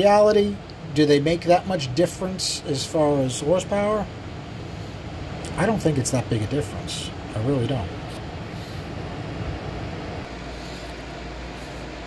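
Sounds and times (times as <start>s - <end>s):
background machine noise: 0.0s - 12.0s
low steady hum: 0.0s - 12.0s.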